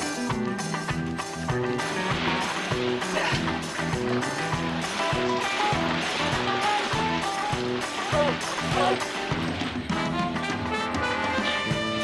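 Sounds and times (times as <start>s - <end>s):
background music with bass pattern: 0.0s - 12.0s.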